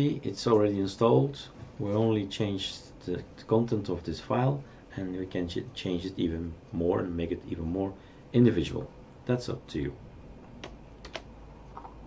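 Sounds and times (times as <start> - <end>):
faint low hum: 0.0 - 12.0
keyboard and mouse clicks: 10.5 - 12.0.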